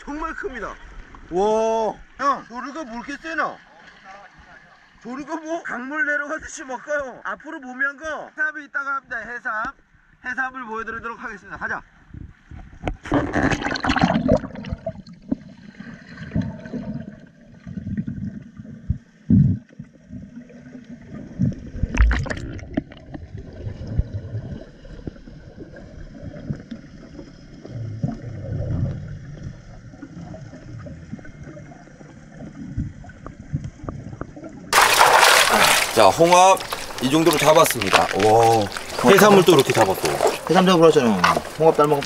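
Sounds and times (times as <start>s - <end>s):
water splashing: 13.0s - 19.2s, 19.8s - 33.8s, 34.5s - 42.0s
bubbling: 13.0s - 42.0s.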